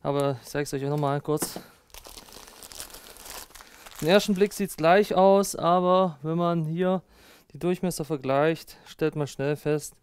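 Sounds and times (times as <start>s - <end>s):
packaging crinkling: 1.8s - 4.8s.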